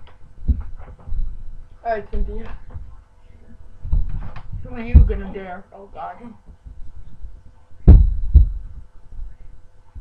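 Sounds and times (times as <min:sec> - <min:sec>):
dull low thumps: 0:00.4 - 0:03.0, 0:03.8 - 0:05.5, 0:06.5 - 0:09.4.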